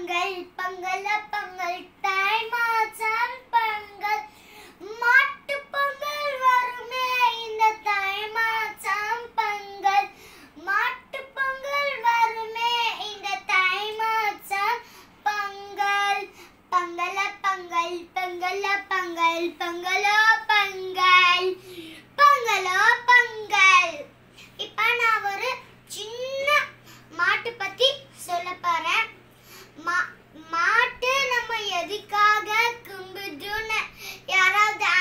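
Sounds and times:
girl singing unaccompanied: 0.0 - 35.0.

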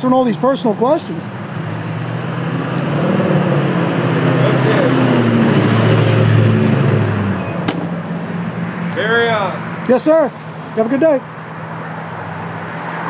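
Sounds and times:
vehicle passing: 0.5 - 13.0.

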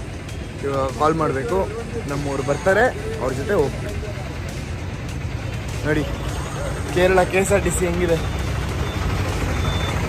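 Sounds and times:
low rumble of vehicle engines: 0.0 - 10.0
faint high beep: 8.2 - 10.0.

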